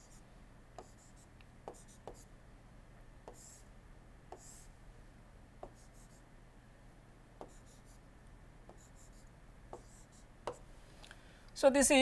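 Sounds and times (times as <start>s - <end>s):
low steady hum: 0.0s - 12.0s
stylus tapping on tablet: 0.8s - 1.0s, 1.6s - 2.3s, 3.2s - 3.5s, 4.3s - 4.6s, 5.6s - 6.1s, 7.4s - 7.8s, 8.7s - 9.1s, 9.7s - 10.6s
scratchy pen strokes: 3.3s - 3.7s, 4.3s - 4.7s, 5.6s - 6.2s, 7.4s - 8.0s, 8.7s - 10.6s.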